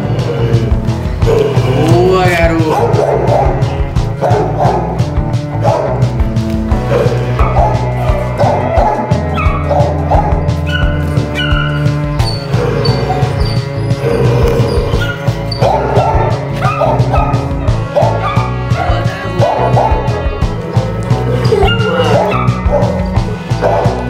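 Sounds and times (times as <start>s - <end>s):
music with steady beat: 0.0s - 24.0s
young dog yipping and barking: 7.4s - 11.8s, 15.0s - 17.4s, 21.4s - 24.0s.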